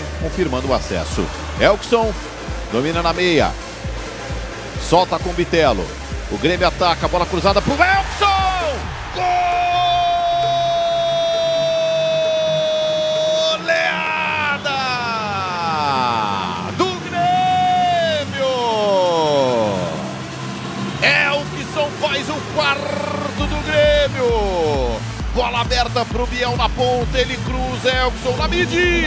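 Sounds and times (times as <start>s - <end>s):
background music: 0.0s - 29.0s
commentator shouting: 4.9s - 20.1s, 21.0s - 29.0s.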